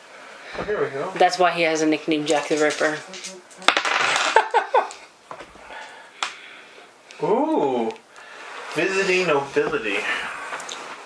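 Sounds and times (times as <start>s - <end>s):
dice clattering on a table: 3.7s - 4.4s.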